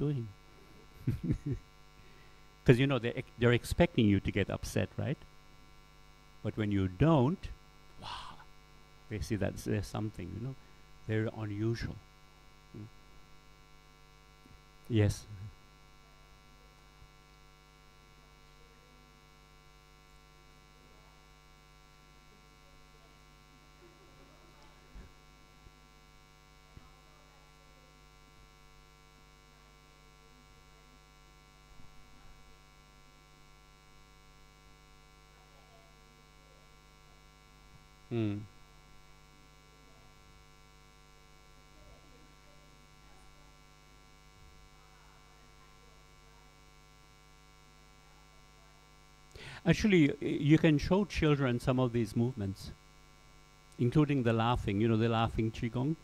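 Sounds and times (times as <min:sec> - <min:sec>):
electrical mains hum: 0:00.0 - 0:56.0
brief vocal sound: 0:08.0 - 0:08.5.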